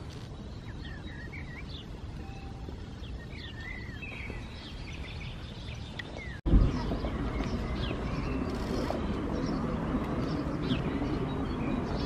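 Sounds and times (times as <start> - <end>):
birds chirping and singing: 0.0 - 12.0
low outdoor rumble: 5.5 - 12.0
louder low rumble: 6.5 - 11.0.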